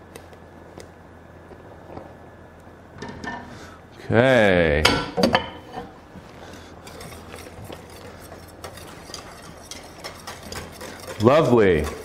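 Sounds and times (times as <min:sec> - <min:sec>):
whisk clinking and scraping pot: 0:06.8 - 0:12.0.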